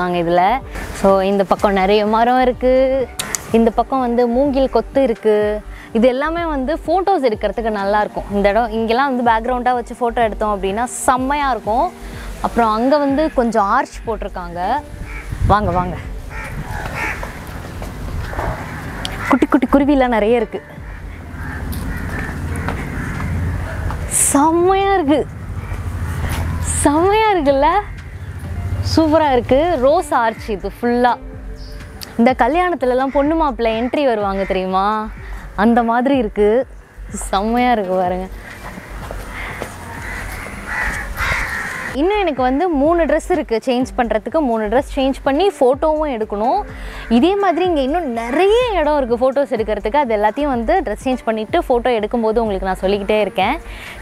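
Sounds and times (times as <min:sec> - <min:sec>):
low background rumble: 0:14.0 - 0:31.6
crow cawing: 0:14.8 - 0:24.2, 0:25.3 - 0:28.4, 0:33.0 - 0:35.9, 0:38.2 - 0:42.0, 0:46.7 - 0:48.5, 0:52.9 - 0:54.0.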